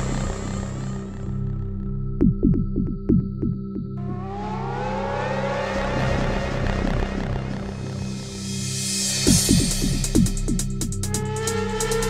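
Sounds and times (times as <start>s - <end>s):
sustained bass tone: 0.0s - 4.2s, 9.3s - 12.0s
rising synthesizer sweep: 0.0s - 8.7s.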